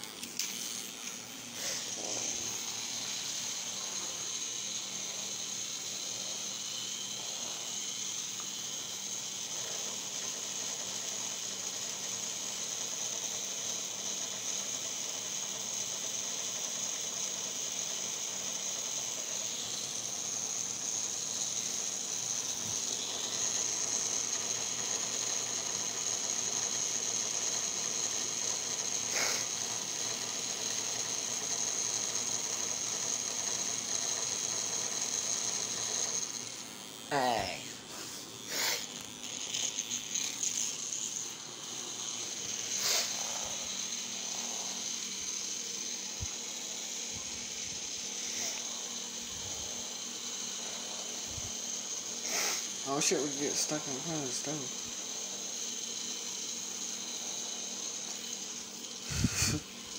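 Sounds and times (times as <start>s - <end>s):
toy motor and gears whirring: 0.0s - 59.9s.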